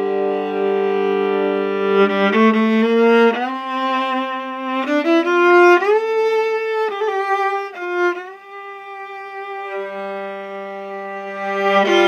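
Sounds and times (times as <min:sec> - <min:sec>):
solo viola playing: 0:00.0 - 0:12.0.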